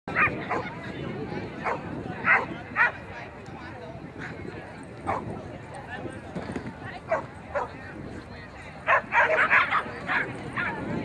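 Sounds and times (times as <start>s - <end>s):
murmur of people talking: 0.1s - 11.0s.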